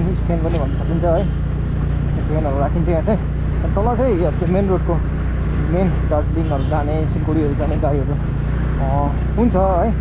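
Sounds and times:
motorcycle engine running: 0.0s - 10.0s
person's voice: 5.6s - 8.2s, 8.8s - 10.0s.

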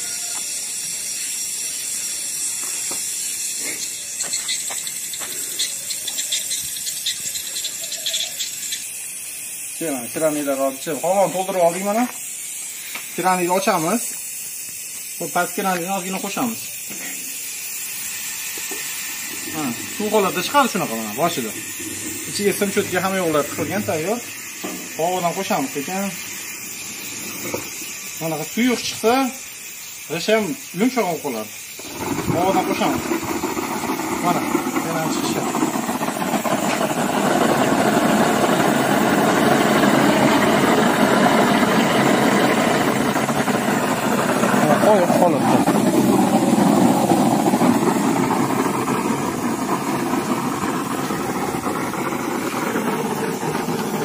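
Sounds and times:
compressed air hissing through pipe: 0.0s - 54.0s
machine drone: 18.0s - 28.7s, 31.7s - 54.0s
foam rushing into metal tub: 18.1s - 54.0s.

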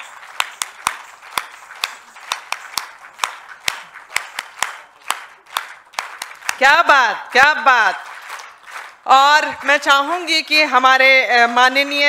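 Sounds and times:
audience applauding: 0.0s - 9.7s
close sharp hand claps: 0.0s - 9.7s.

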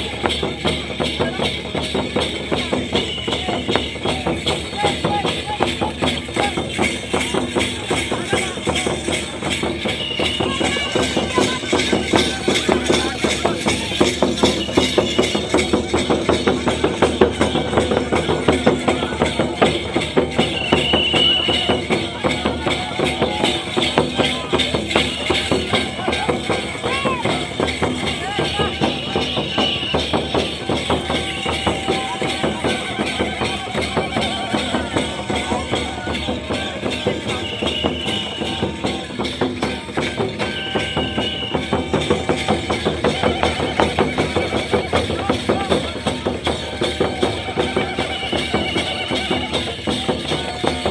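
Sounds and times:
drums beaten with sticks: 0.0s - 50.9s.

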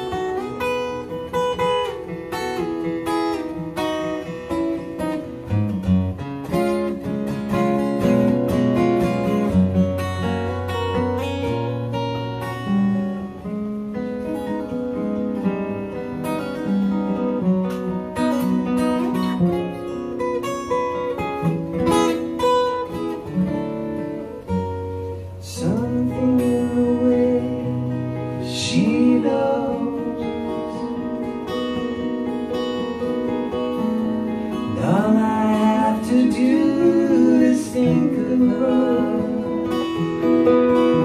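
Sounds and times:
acoustic guitars playing: 0.0s - 41.0s.

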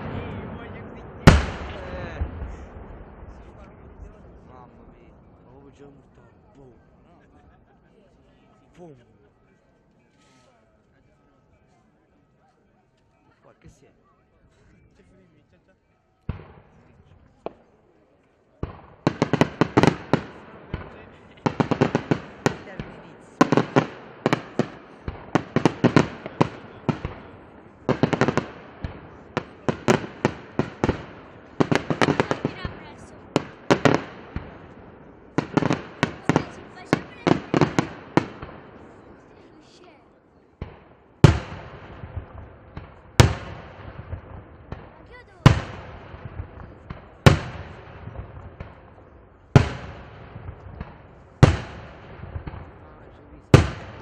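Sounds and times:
single loud firework bangs: 0.0s - 3.6s, 40.6s - 54.0s
fireworks bangs and crackles: 0.0s - 6.6s, 16.3s - 54.0s.

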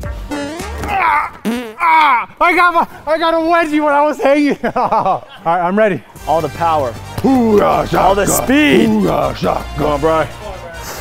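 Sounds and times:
background music: 0.0s - 11.0s
man's straining cries: 0.8s - 2.4s.

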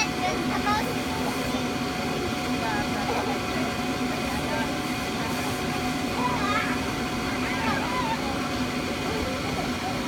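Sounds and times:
children's voices: 0.0s - 1.8s, 6.1s - 8.5s
electric air blower humming: 0.0s - 10.0s.

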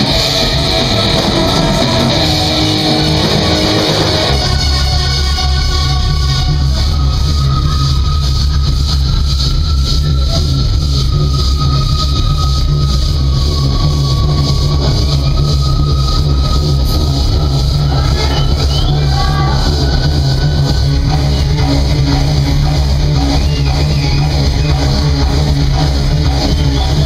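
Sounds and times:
bass-heavy steady pulse: 0.0s - 27.0s
high held synth tone: 0.0s - 27.0s.

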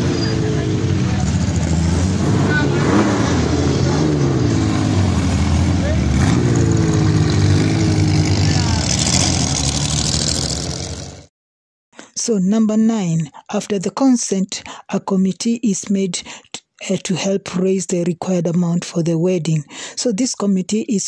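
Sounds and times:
onlookers' voices: 0.0s - 7.4s, 8.2s - 9.2s
rally car engines revving: 0.0s - 11.3s.

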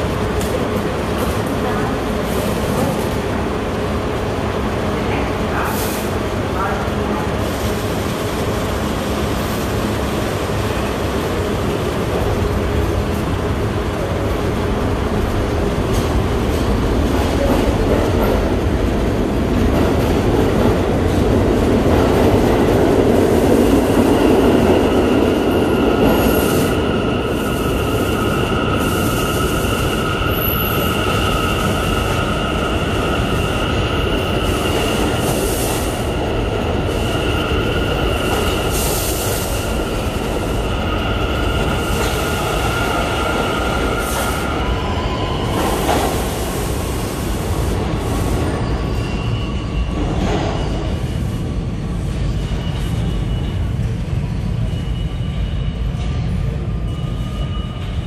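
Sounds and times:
subway train running gear rumbling: 0.0s - 58.0s.

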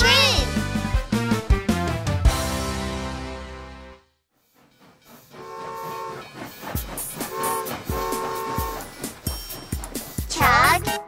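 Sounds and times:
cartoon train whistle tooting: 5.4s - 6.3s, 7.2s - 9.0s
thumping beat: 5.8s - 11.0s.

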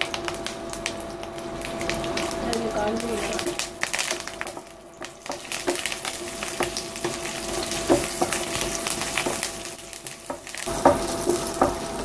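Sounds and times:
food sizzling in hot oil: 0.0s - 12.0s
wooden spatula knocking on pan: 4.1s - 12.0s.

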